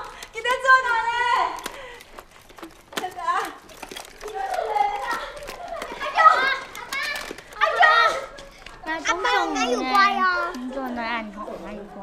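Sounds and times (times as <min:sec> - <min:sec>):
people talking: 0:00.4 - 0:01.9, 0:04.2 - 0:12.0
children calling out: 0:03.2 - 0:10.7.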